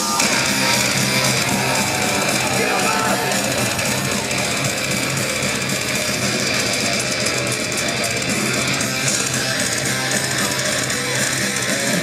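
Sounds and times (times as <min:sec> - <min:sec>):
distorted electric guitars: 0:00.0 - 0:12.0
rapid drumming: 0:00.0 - 0:12.0.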